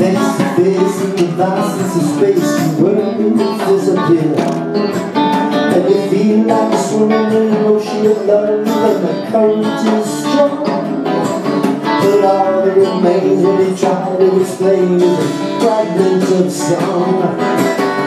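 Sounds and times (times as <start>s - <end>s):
drum kit beat: 0.0s - 18.0s
electric guitars playing: 0.0s - 18.0s.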